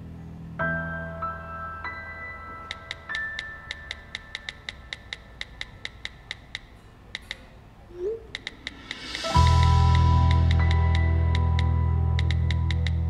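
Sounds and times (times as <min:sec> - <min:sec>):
phone keyboard clicks: 0:02.6 - 0:07.5, 0:08.3 - 0:08.9, 0:11.6 - 0:13.0
short rising blip: 0:08.0 - 0:11.0.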